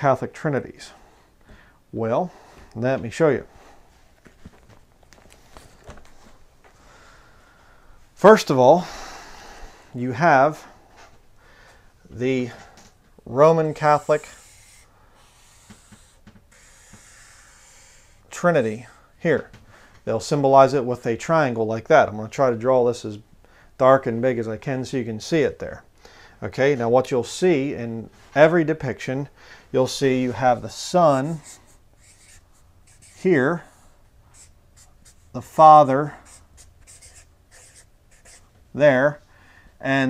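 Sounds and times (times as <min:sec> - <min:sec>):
marker scratching on paper: 0:13.6 - 0:18.2, 0:31.0 - 0:33.5, 0:34.3 - 0:38.5.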